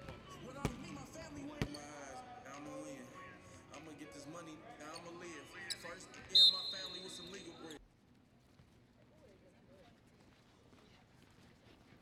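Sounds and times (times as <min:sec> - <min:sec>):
voices: 0:00.0 - 0:07.8
whistle blowing: 0:05.7 - 0:07.7.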